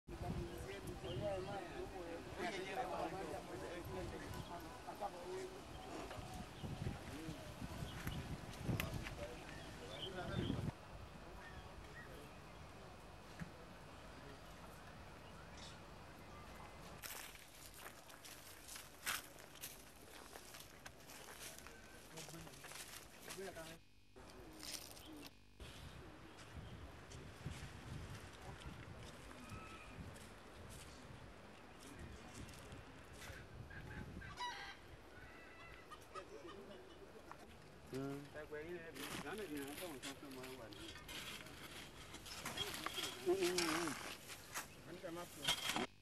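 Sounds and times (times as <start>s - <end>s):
footsteps scuffing and crunching: 16.9s - 25.3s, 39.0s - 45.7s.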